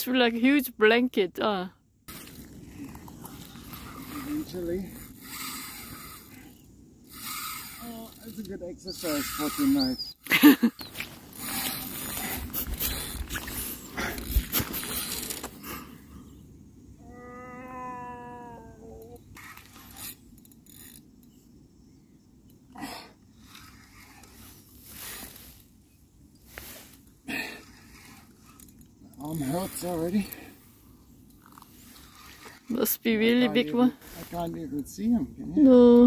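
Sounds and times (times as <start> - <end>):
drawn-out call: 8.9 - 10.2.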